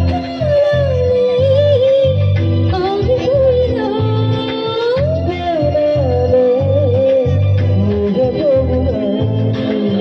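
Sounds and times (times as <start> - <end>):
amplified backing track with bass beat: 0.0 - 10.0
woman singing into microphone: 0.0 - 10.0.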